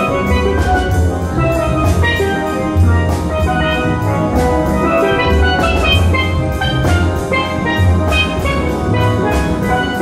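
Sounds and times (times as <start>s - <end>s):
bass: 0.0s - 10.0s
drums: 0.0s - 10.0s.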